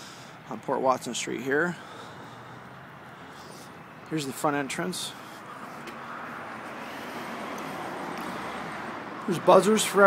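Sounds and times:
car passing on street: 0.0 - 10.0.

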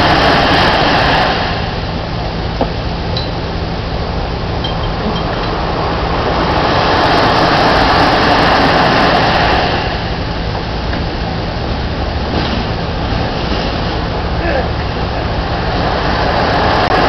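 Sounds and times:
waves washing onto beach: 0.0 - 17.0.

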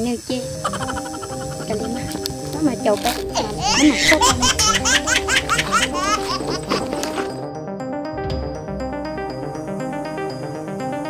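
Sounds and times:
background music: 0.0 - 11.0
woman giggling: 0.6 - 7.3.

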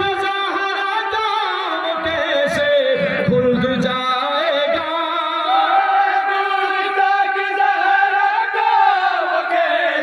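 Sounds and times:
man chanting through loudspeaker: 0.0 - 9.0.

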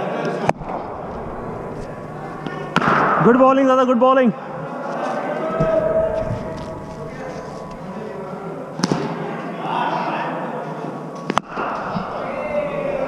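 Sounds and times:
distant voices: 0.4 - 10.6, 11.4 - 13.0
hall noise: 0.5 - 10.2, 11.4 - 13.0.

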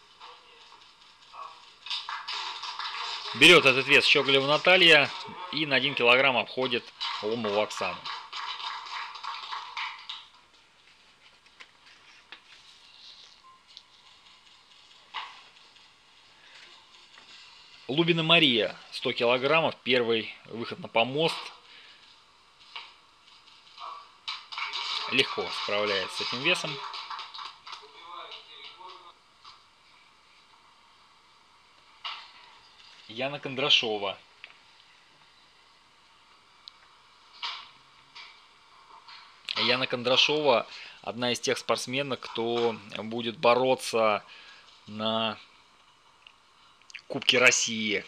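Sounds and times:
spectators applauding: 1.8 - 5.3, 6.7 - 10.3, 24.4 - 27.8.

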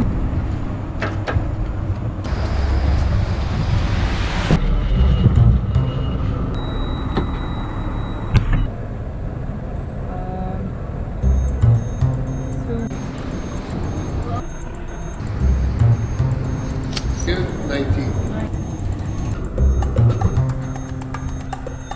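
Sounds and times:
city street traffic: 0.0 - 21.9
doors clicking open: 11.7 - 21.9.

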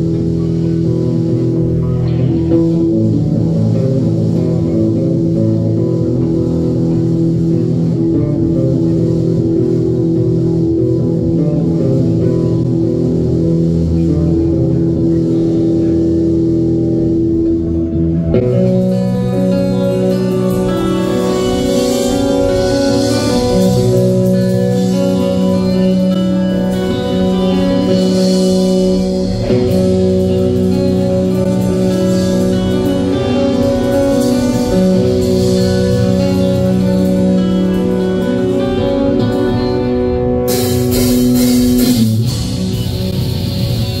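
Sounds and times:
bass guitar: 0.0 - 44.0
electric guitars: 0.0 - 44.0.

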